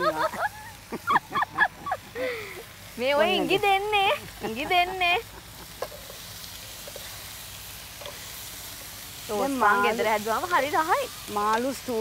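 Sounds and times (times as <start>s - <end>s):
person laughing: 0.0s - 2.7s, 3.3s - 5.9s
voices: 0.0s - 6.0s, 9.2s - 12.0s
food sizzling in a frying pan: 0.0s - 12.0s
faint utensil ticks: 8.0s - 8.2s, 11.2s - 12.0s.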